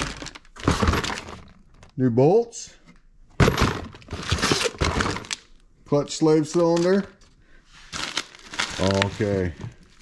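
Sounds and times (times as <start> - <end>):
cardboard and plastic bag rustling: 0.0 - 1.8, 7.8 - 10.0.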